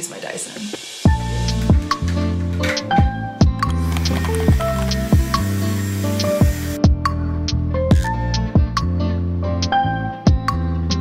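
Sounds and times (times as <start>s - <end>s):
hiss: 0.3s - 1.2s, 4.0s - 6.8s
background music with beat and bass: 1.0s - 11.0s.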